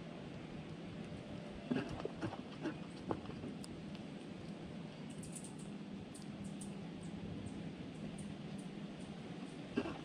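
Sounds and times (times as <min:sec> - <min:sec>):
animal tapping and rustling leaves: 0:00.3 - 0:10.0.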